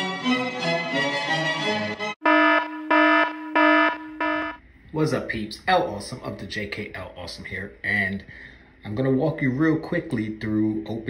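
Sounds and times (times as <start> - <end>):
alarm klaxon blasts: 2.1 - 4.6.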